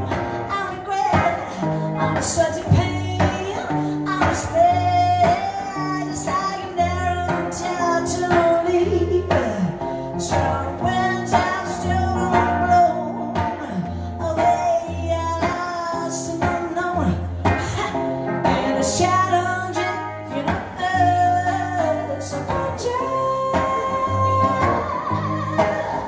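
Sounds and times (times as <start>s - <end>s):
guitar playing: 0.0s - 26.0s
woman singing: 0.0s - 26.0s.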